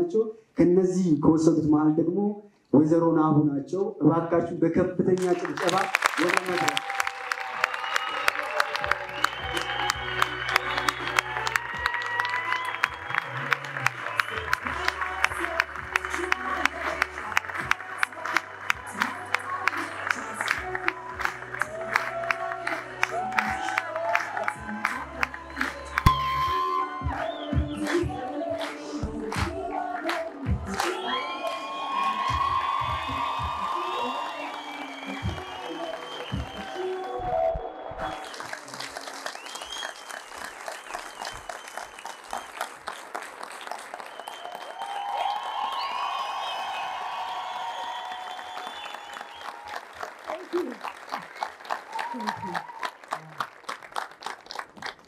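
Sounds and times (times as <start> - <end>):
audience applauding and cheering: 5.1 - 55.0
music: 6.4 - 38.5.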